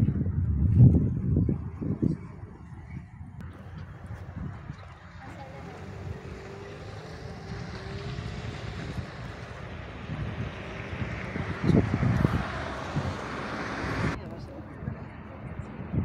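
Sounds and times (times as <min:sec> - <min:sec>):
traffic rushing: 0:00.0 - 0:16.0
wind buffeting microphone: 0:00.0 - 0:16.0.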